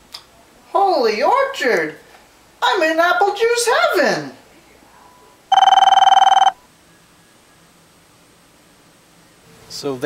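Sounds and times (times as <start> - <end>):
telephone ringing: 5.5 - 6.6.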